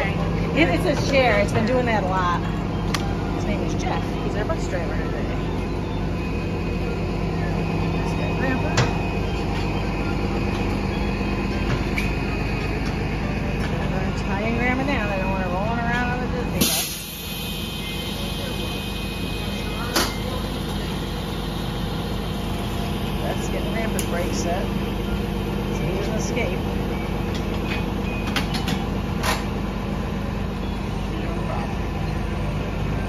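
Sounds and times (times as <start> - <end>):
bus engine idling: 0.0 - 33.0
air blast: 16.6 - 17.7.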